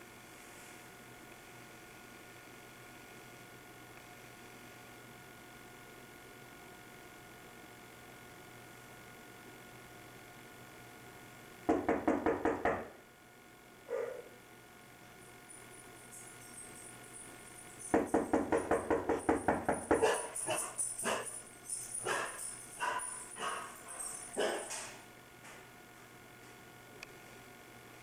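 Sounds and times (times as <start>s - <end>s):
knocking on a door: 11.7s - 13.0s, 17.9s - 20.2s.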